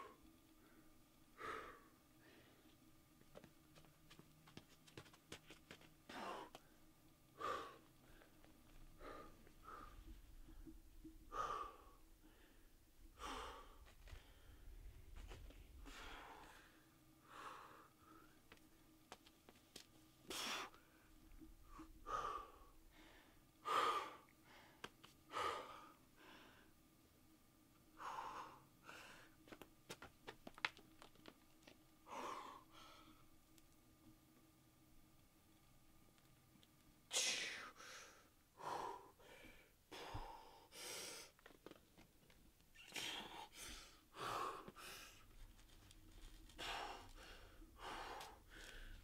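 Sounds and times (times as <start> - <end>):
person breathing hard: 0.0 - 2.7, 6.1 - 6.8, 7.4 - 18.4, 20.3 - 26.8, 28.0 - 29.4, 32.0 - 33.3, 37.1 - 41.4, 43.0 - 49.0.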